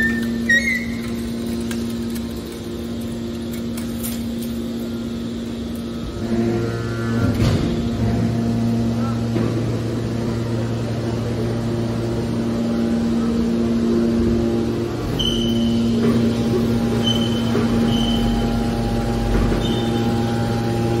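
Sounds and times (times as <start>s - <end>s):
hydraulic baler humming: 0.0s - 21.0s.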